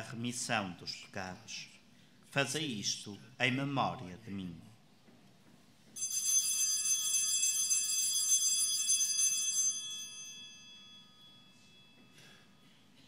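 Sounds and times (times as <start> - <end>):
altar bells ringing: 6.0 - 13.0.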